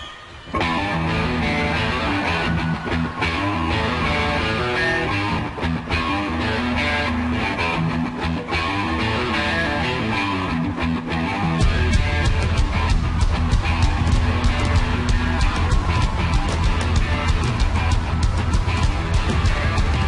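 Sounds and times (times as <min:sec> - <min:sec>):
electric guitar riff: 0:00.0 - 0:20.0
bass guitar: 0:00.5 - 0:20.0
drums: 0:10.5 - 0:20.0.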